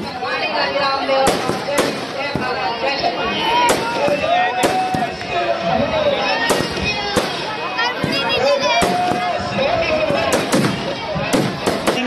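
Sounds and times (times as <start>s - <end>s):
crowd voices and shouting: 0.0s - 12.0s
firecracker bangs: 1.2s - 2.6s, 3.6s - 5.1s, 6.4s - 12.0s.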